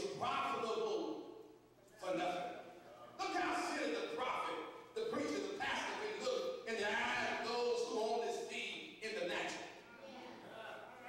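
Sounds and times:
man preaching into a microphone: 0.0s - 1.3s, 2.0s - 2.6s, 3.2s - 9.8s.

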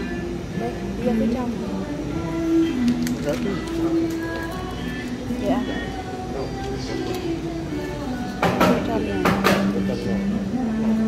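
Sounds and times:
background music: 0.0s - 11.0s
people's voices: 0.0s - 11.0s.

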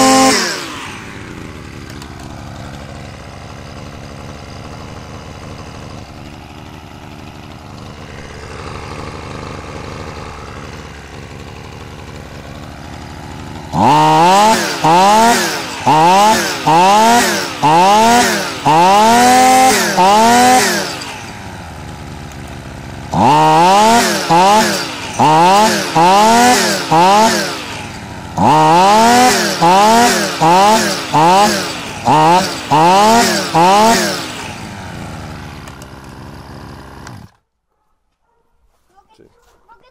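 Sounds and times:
brush cutter engine revving: 0.0s - 37.4s.

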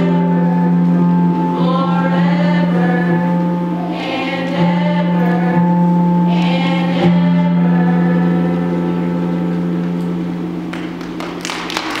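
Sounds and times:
choir holding a chord: 0.0s - 12.0s.

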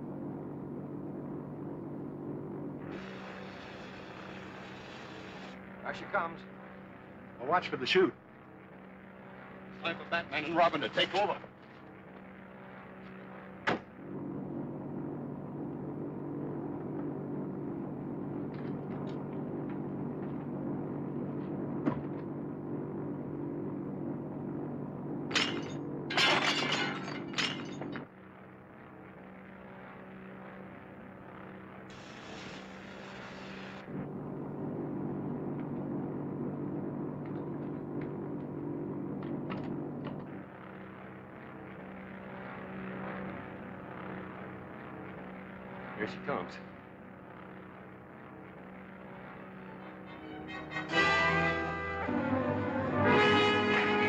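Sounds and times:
propeller engines droning: 0.0s - 54.0s
flare hissing: 2.8s - 5.6s, 31.9s - 33.8s.

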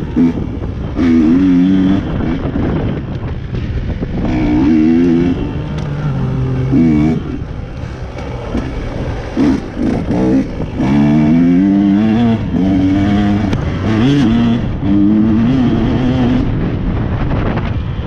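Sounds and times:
dirt bike engine revving: 0.0s - 2.9s, 4.1s - 16.8s.

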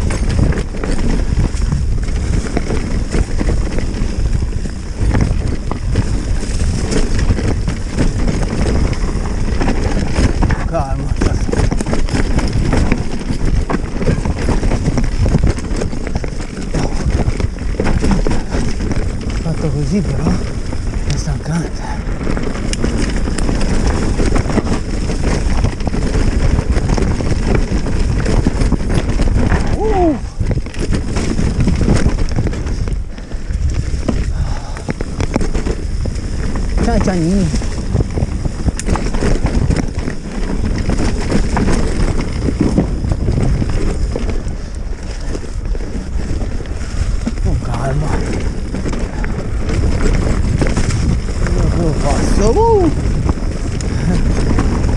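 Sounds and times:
bike rattling over rocks: 0.0s - 54.9s
wind buffeting microphone: 0.0s - 54.9s.

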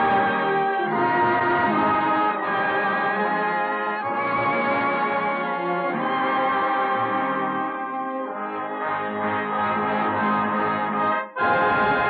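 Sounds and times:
brass-led orchestral music: 0.0s - 12.0s.

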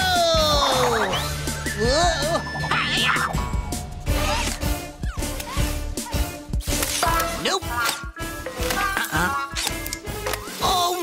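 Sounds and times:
upbeat background music: 0.0s - 11.0s.

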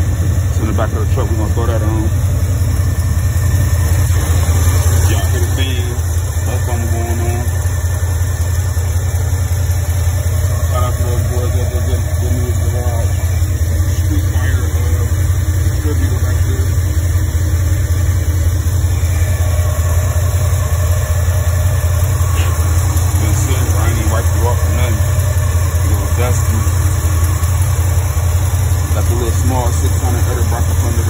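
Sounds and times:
car engine idling: 0.0s - 31.0s.

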